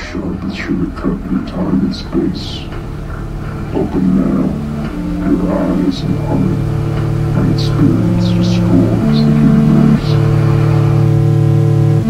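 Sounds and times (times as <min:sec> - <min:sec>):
low dark synthesizer chord: 0:00.0 - 0:12.0.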